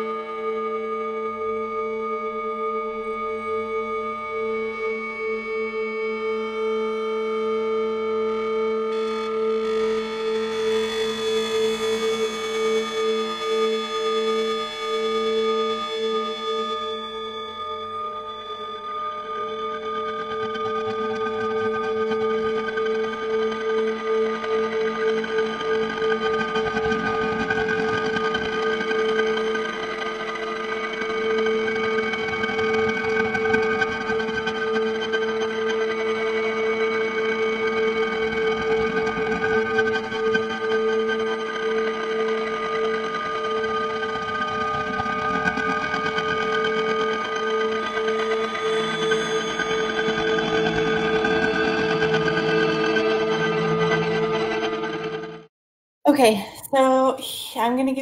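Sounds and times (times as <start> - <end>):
electronic drone music: 18.2 - 55.5.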